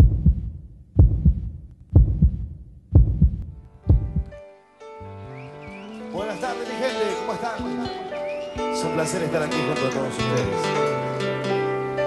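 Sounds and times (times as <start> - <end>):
heartbeat thumps: 0.0 - 4.4.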